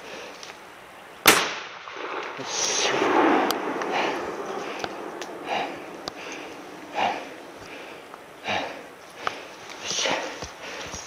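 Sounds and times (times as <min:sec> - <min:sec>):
loud gunshot: 0:01.3 - 0:07.6.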